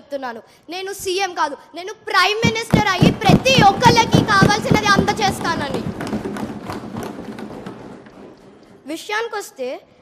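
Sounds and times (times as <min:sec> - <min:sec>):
desk thumps: 0:02.4 - 0:08.8.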